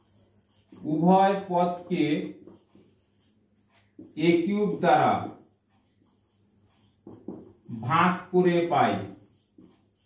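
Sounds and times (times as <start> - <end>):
marker pen squeaking on whiteboard: 0.0 - 10.0
man speaking: 0.8 - 2.4, 4.2 - 5.4, 7.7 - 9.2.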